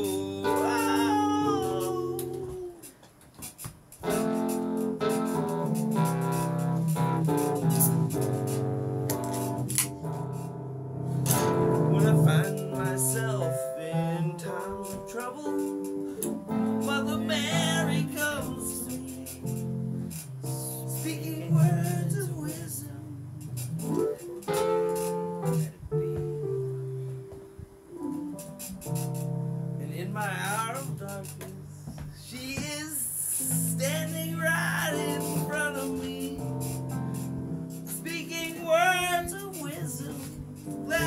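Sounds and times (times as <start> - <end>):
keyboard playing chords: 0.0 - 2.9, 4.0 - 32.2, 33.0 - 41.0
person singing wordlessly: 0.0 - 3.0, 11.4 - 24.1, 29.8 - 36.9, 37.8 - 41.0.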